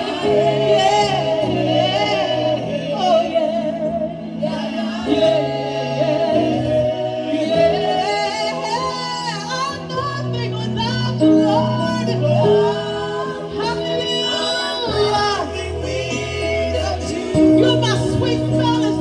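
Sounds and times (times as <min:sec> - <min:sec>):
group singing gospel song: 0:00.0 - 0:19.0.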